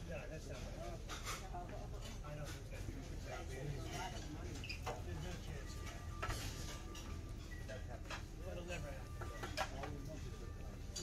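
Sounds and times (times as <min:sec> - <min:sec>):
faint background music: 0:00.0 - 0:11.0
utensils and dishes clinking: 0:00.0 - 0:11.0.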